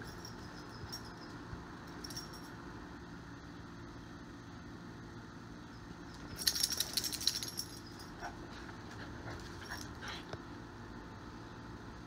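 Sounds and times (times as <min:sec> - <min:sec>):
metallic clinks and clicks: 0:00.0 - 0:02.6, 0:06.1 - 0:08.2.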